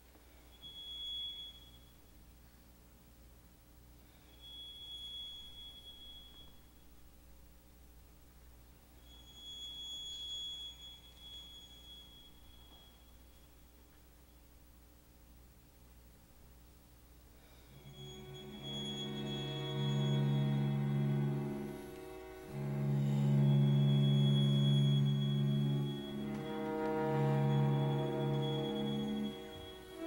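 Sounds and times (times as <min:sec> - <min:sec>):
thin high held tone: 0:00.3 - 0:02.6, 0:04.0 - 0:07.2, 0:08.7 - 0:14.4, 0:17.4 - 0:30.0
violin high harmonic note: 0:17.4 - 0:30.0
string quartet sustained chord: 0:17.8 - 0:30.0.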